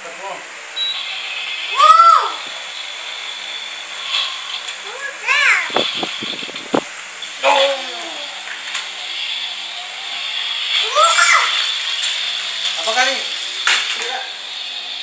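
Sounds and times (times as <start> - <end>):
child squealing: 1.7 - 2.5, 4.9 - 5.8, 10.8 - 11.7.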